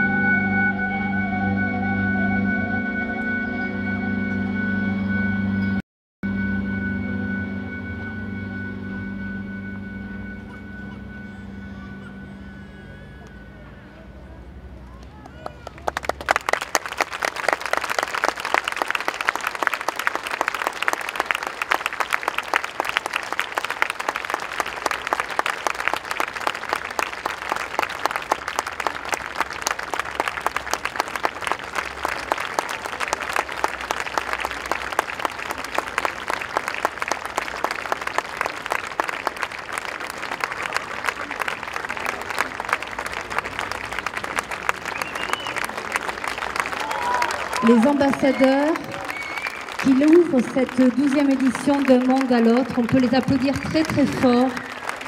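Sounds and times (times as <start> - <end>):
audience applauding: 14.9 - 55.0.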